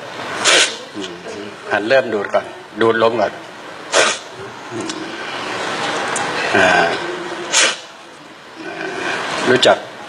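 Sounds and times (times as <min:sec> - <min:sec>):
man sharply sucking in air: 0:00.4 - 0:00.8, 0:03.9 - 0:04.3, 0:07.5 - 0:07.9.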